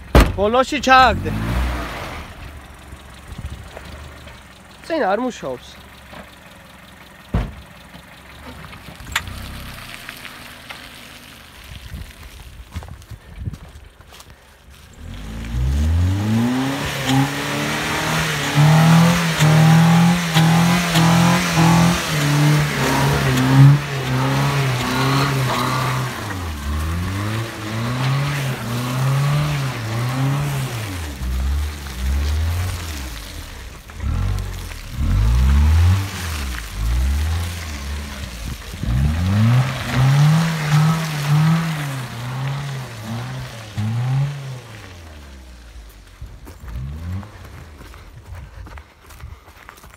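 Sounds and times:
engine revving hard: 0.9 - 2.4, 15.0 - 45.3.

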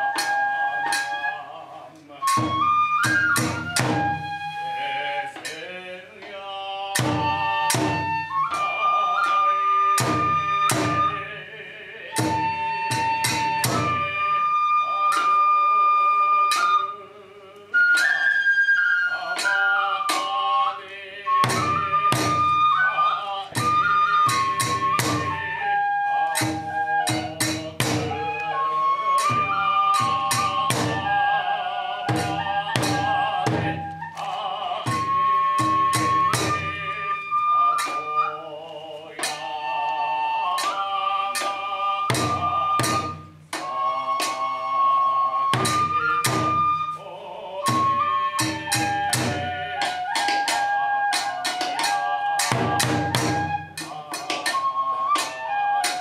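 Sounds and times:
bamboo flute melody: 0.0 - 56.0
wavering chanted singing: 0.0 - 56.0
drum strikes: 2.2 - 4.5, 5.3 - 11.2, 12.1 - 14.4, 21.3 - 22.8, 23.4 - 25.7, 26.3 - 31.4, 32.0 - 34.2, 34.8 - 36.9, 40.6 - 44.6, 45.5 - 46.8, 47.6 - 56.0
taiko drum strikes: 7.0 - 8.2, 26.4 - 28.2, 29.2 - 31.1, 52.4 - 54.3
small hand cymbals: 12.0 - 47.0, 47.6 - 56.0.

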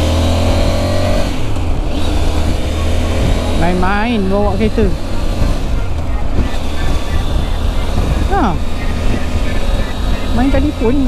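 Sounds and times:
motorcycle engine drone: 0.0 - 11.0
wind rushing on microphone: 0.1 - 11.0.

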